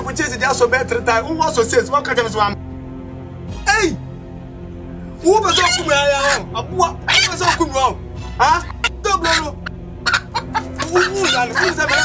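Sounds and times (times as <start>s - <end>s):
hen clucking: 5.5s - 5.9s, 7.0s - 7.8s, 8.4s - 12.0s.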